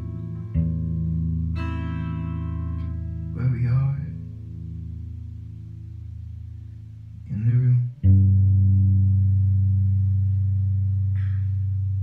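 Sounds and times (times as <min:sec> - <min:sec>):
guitar chord ringing: 0:00.0 - 0:06.8.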